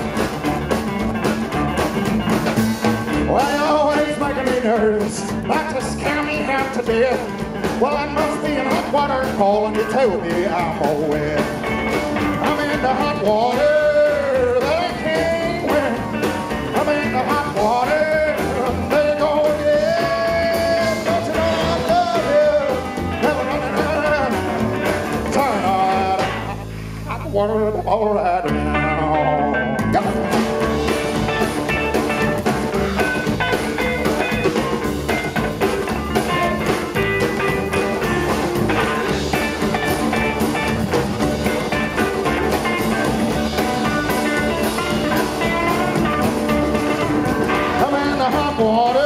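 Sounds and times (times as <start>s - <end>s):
acoustic and electric guitar: 0.0s - 49.0s
drum kit: 0.0s - 49.0s
rockabilly band instrumental: 0.0s - 49.0s
upright bass: 0.0s - 49.0s.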